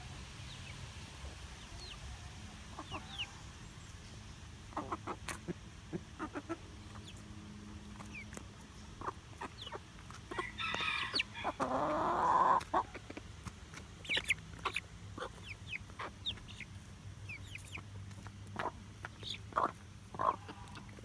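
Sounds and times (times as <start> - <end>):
hens clucking: 1.2 - 3.6, 4.5 - 21.0.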